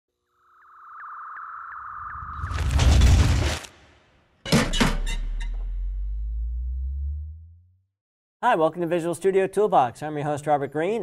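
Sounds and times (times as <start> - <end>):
short rising chirps: 0.3 - 2.7.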